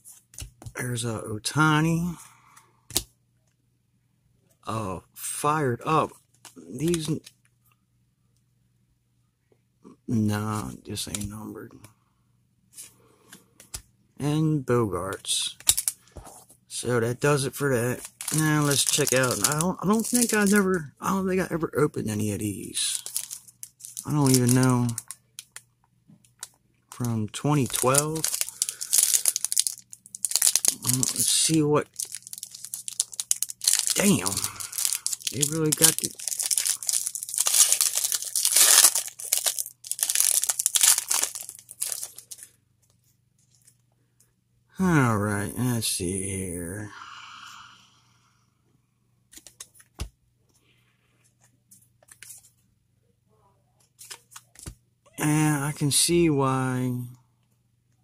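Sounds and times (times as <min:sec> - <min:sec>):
foil wrapper crinkling: 0:15.6 - 0:16.0, 0:17.9 - 0:20.7, 0:22.8 - 0:25.6, 0:26.9 - 0:42.5.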